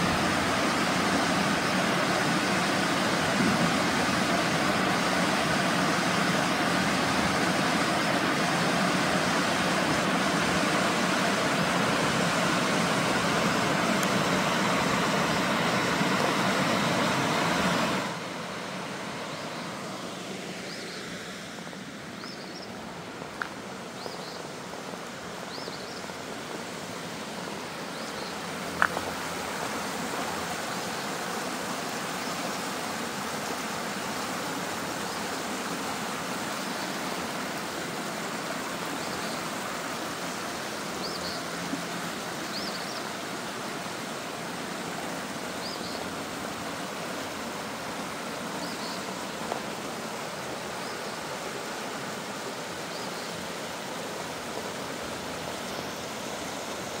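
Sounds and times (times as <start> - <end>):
creek rushing over stones: 0.0 - 57.0.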